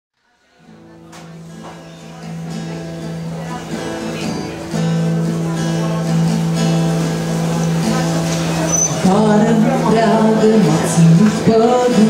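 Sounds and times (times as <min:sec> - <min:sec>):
acoustic guitar chords: 0:00.5 - 0:12.0.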